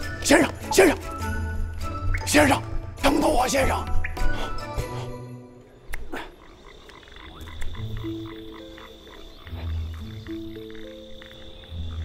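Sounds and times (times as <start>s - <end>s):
soft low music notes: 0.0s - 12.0s
frogs croaking: 5.4s - 12.0s
high insect-like tone: 6.4s - 12.0s.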